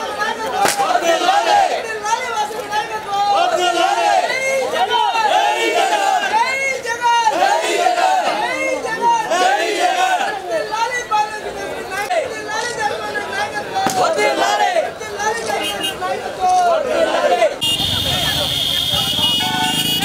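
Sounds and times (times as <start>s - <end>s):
crowd talking and calling out: 0.0s - 20.0s.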